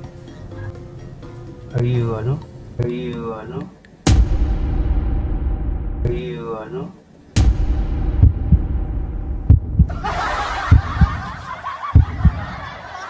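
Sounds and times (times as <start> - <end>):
heartbeat double thumps: 4.1 - 6.1, 7.4 - 10.0, 10.6 - 11.4, 12.0 - 12.6
sharp hit: 4.1 - 6.2, 7.4 - 9.9.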